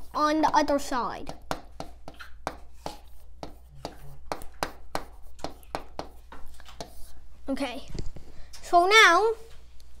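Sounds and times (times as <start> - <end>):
marker pen tapping on board: 0.1 - 7.0.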